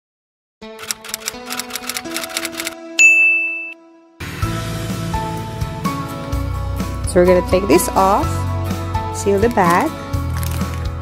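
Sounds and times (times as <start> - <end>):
typewriter keystroke clacks: 0.8 - 2.8
typewriter bell ding: 0.9 - 3.8.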